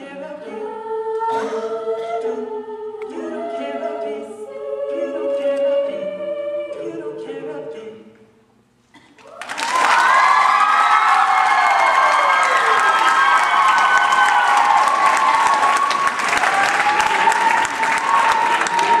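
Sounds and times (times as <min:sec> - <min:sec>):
audience applause and cheering: 0:09.2 - 0:19.0
high-pitched whoops and screams: 0:09.3 - 0:19.0.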